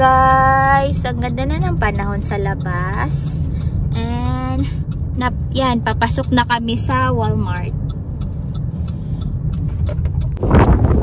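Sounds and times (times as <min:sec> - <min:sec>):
car engine and tyres rumbling: 0:00.0 - 0:11.0
faint ticks: 0:07.2 - 0:10.4.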